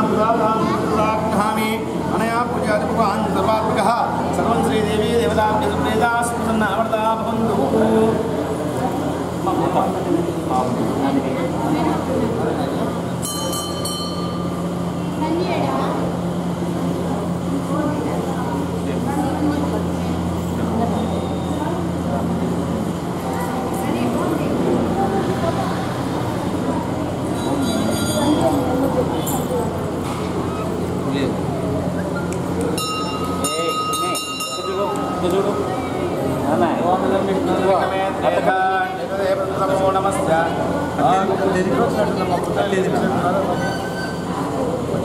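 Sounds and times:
voices talking in a hall: 0:00.0 - 0:45.0.

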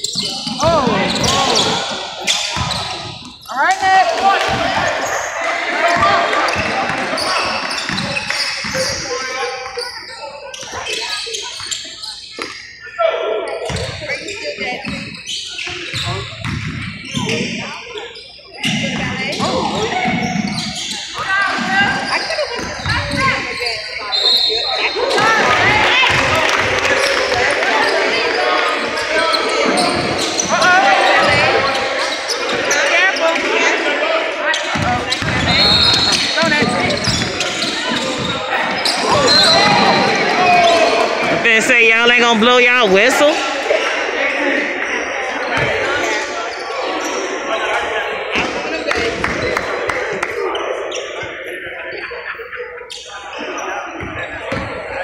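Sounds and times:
echoing shouting and chatter: 0:00.0 - 0:55.0.

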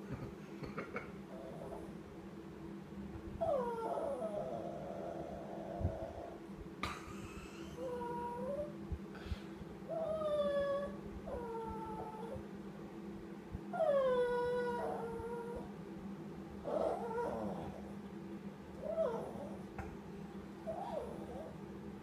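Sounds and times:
small dog whining: 0:03.4 - 0:06.3, 0:07.7 - 0:08.7, 0:09.9 - 0:12.4, 0:13.7 - 0:15.7, 0:16.6 - 0:17.8, 0:18.8 - 0:19.6, 0:20.7 - 0:21.6.

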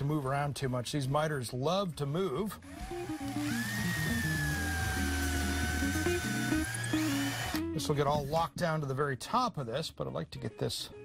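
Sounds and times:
background music: 0:00.0 - 0:11.0
cordless drill whining: 0:02.6 - 0:07.7.

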